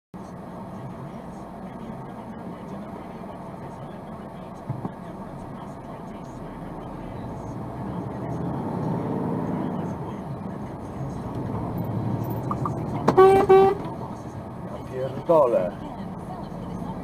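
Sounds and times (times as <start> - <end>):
truck engine pulling away: 6.3 - 17.0
vehicle horn blasts: 13.0 - 14.0.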